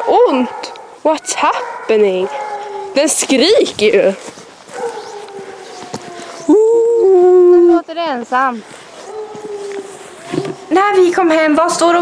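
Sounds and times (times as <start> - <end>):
dog howling: 1.2 - 3.2, 4.7 - 7.6, 9.0 - 11.5.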